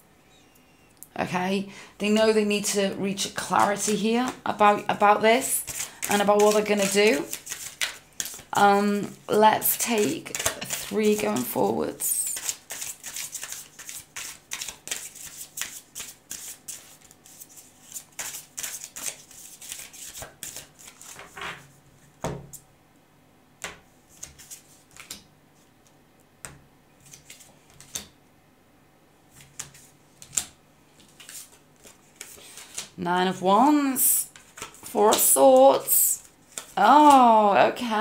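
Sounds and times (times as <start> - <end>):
cards shuffled by hand: 5.6 - 8.6, 9.9 - 11.6, 12.2 - 21.4, 24.1 - 25.2, 27.0 - 28.1, 29.4 - 33.0, 34.3 - 35.4, 36.2 - 37.3.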